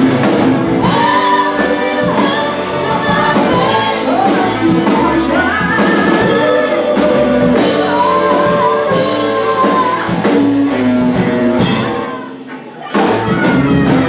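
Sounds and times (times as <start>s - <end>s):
drums: 0.0s - 14.0s
electric guitar: 0.0s - 14.0s
singers carrying melody: 0.2s - 12.4s.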